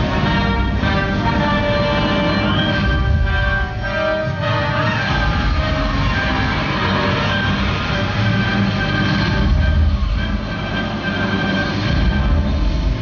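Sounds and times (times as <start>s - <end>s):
held musical tones: 0.0s - 13.0s
deep rumbling sound effect: 4.6s - 13.0s.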